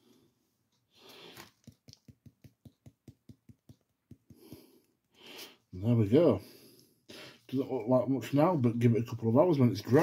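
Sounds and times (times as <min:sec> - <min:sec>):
rapid light taps: 0:01.5 - 0:05.2.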